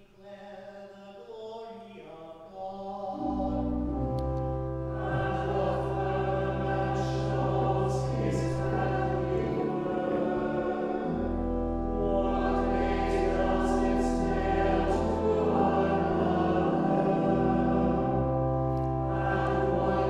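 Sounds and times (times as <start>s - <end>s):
church choir singing: 0.0s - 20.0s
pipe organ low bass notes: 3.2s - 20.0s.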